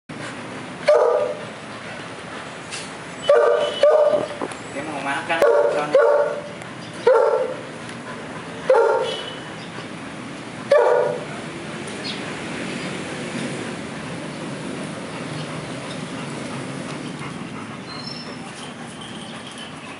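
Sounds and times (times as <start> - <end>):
dog barking: 0.8 - 1.4, 3.3 - 4.3, 5.4 - 7.6, 8.7 - 9.4, 10.7 - 11.3.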